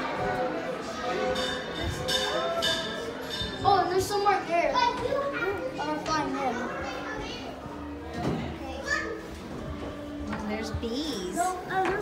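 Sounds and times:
young children playing: 0.0 - 10.3, 11.0 - 12.0.

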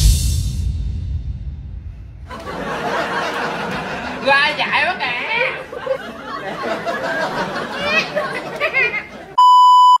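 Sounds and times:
laughter: 2.3 - 4.5, 5.4 - 9.4
high-pitched test-tone beep: 9.4 - 10.0.

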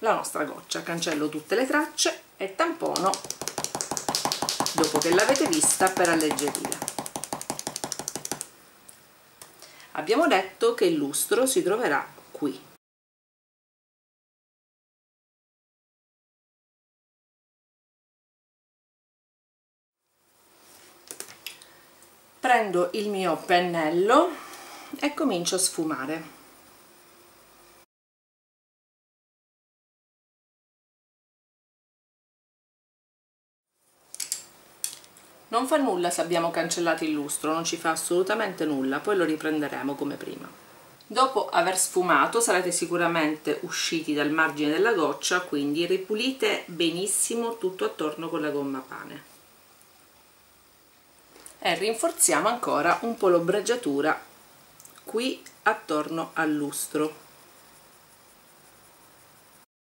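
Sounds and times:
eraser rubbing on paper: 3.0 - 8.4.

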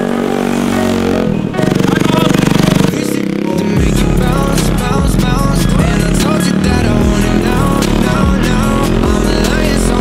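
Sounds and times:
small gas engine running: 0.0 - 3.0
background music: 0.0 - 10.0.

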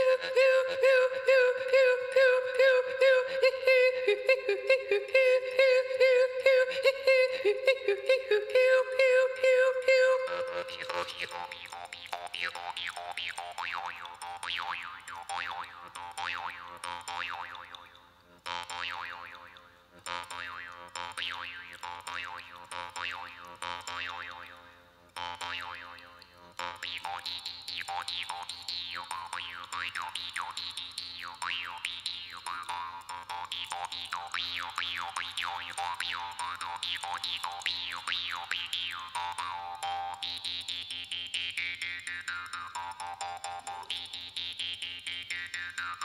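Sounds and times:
jaw harp playing: 8.9 - 24.6, 25.2 - 46.0.

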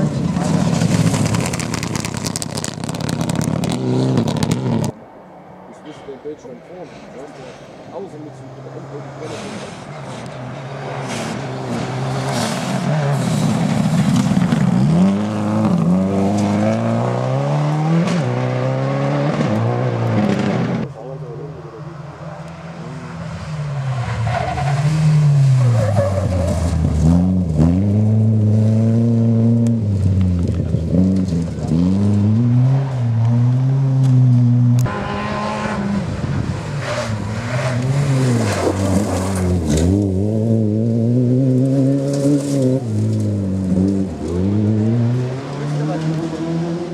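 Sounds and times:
tyres sliding on gravel: 0.0 - 4.9, 8.9 - 15.4, 36.7 - 40.2
rally car engines revving: 0.0 - 5.0, 5.8 - 46.9.

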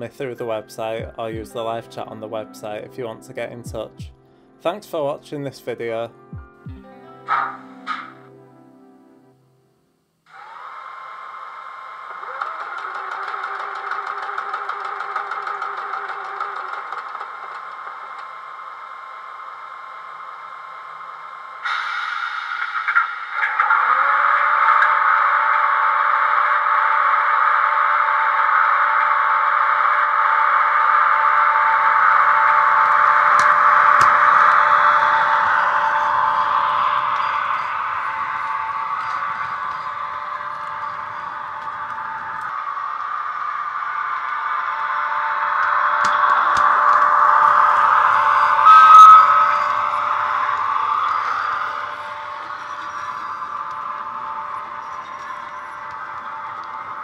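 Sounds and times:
electric locomotive whine: 0.0 - 57.0
short rising tone: 21.4 - 57.0.

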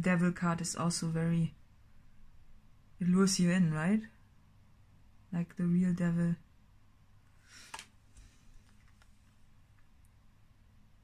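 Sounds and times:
cards rustling: 7.5 - 9.4.

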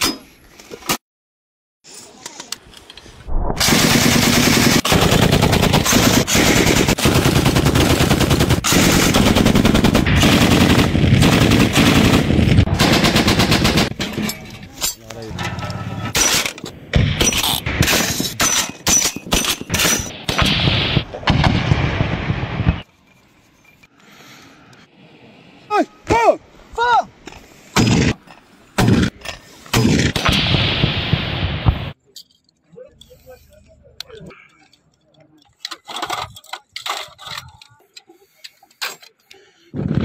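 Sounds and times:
machine gun firing: 3.6 - 14.0.

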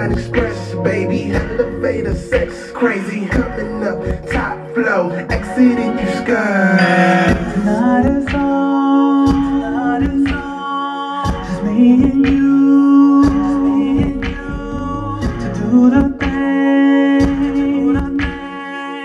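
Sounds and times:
hip-hop beat: 0.0 - 19.0
singer holding gliding notes: 5.7 - 9.9.

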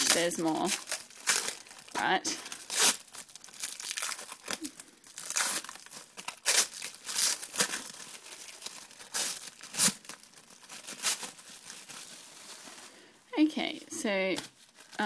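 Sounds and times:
plastic wrap crinkling and tearing: 0.0 - 13.1, 14.4 - 15.0.

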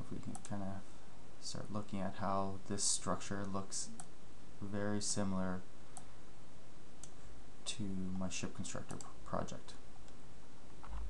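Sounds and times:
computer mouse clicks: 0.2 - 0.6.

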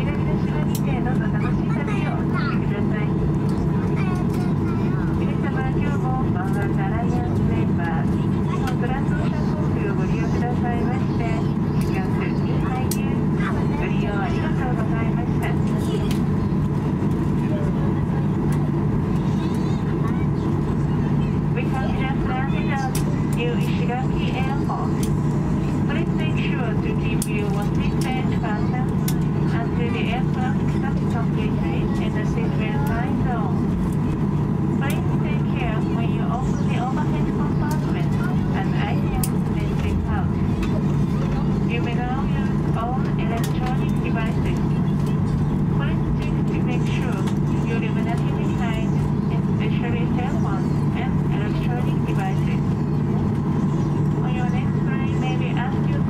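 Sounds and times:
announcement over pa system: 0.0 - 56.0
jet cabin engine drone: 0.0 - 56.0.

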